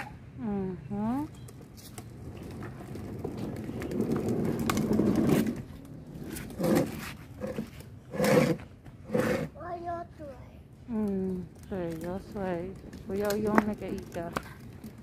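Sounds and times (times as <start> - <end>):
plastic toy wheels rumbling on concrete: 1.0 - 9.8, 10.9 - 15.0
young child's voice: 9.5 - 10.8.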